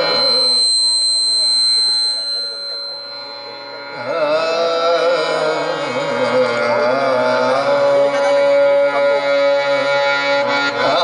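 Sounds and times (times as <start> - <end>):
harmonium tones: 3.0 - 11.0
man singing: 3.9 - 11.0.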